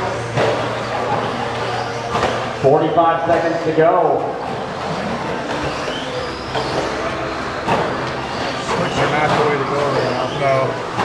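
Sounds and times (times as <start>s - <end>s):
electric rc truck motors: 4.6s - 11.0s.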